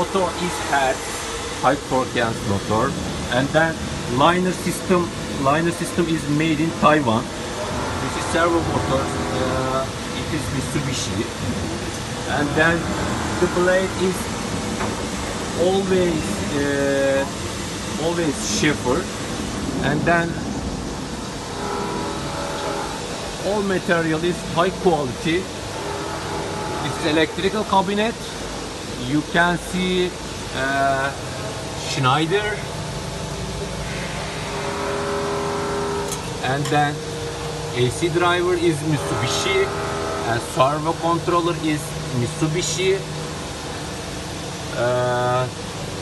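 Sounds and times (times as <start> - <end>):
multi-tone motor hum: 0.0 - 46.0
running machinery: 0.0 - 46.0
man's voice: 12.3 - 14.3, 19.8 - 20.4.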